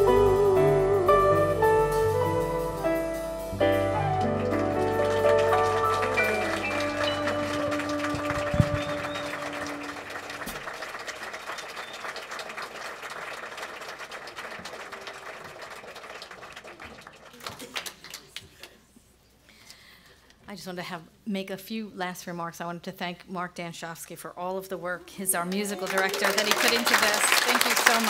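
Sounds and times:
congregation applauding: 0:04.0 - 0:18.8, 0:25.4 - 0:28.0.

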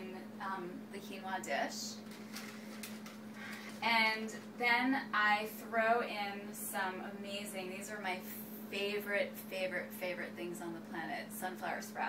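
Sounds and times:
steady low hum: 0:00.0 - 0:12.0
plastic bag crinkling: 0:02.0 - 0:03.8.

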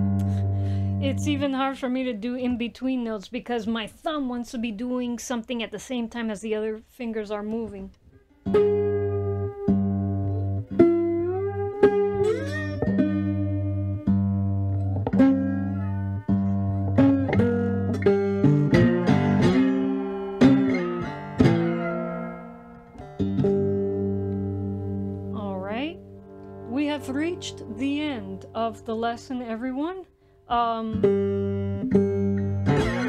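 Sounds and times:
slide guitar fingerpicked: 0:00.0 - 0:02.7, 0:08.1 - 0:33.0.

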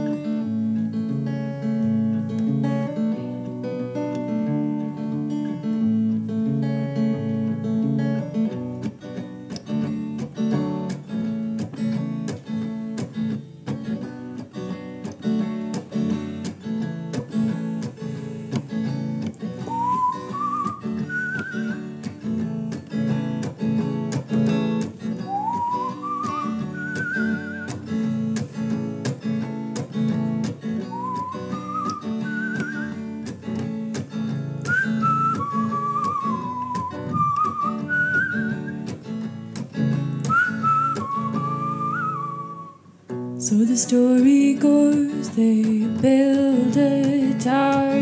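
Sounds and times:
guitar strummed in folk rhythm: 0:00.0 - 0:48.0
whistled melody: 0:19.6 - 0:22.0, 0:25.2 - 0:28.1, 0:30.8 - 0:33.2, 0:34.6 - 0:38.9, 0:40.2 - 0:42.8.

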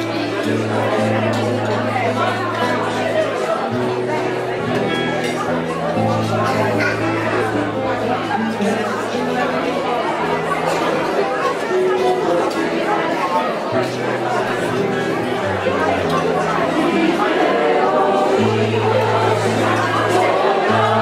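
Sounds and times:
audience chatter: 0:00.0 - 0:21.0
guitar accompaniment: 0:00.0 - 0:21.0
choir singing: 0:15.8 - 0:21.0.

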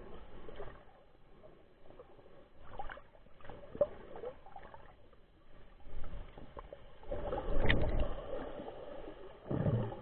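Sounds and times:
muffled underwater water surges: 0:00.0 - 0:10.0.

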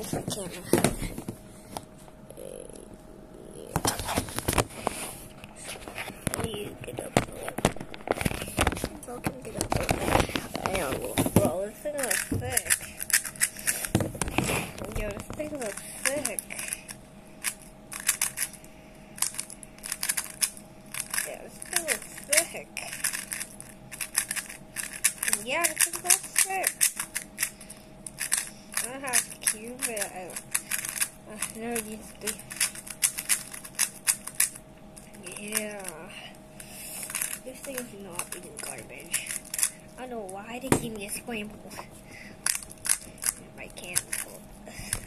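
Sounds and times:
puzzle cube plastic clicks: 0:12.0 - 0:14.0, 0:15.3 - 0:18.6, 0:19.2 - 0:35.7, 0:36.6 - 0:39.8, 0:42.4 - 0:45.0.

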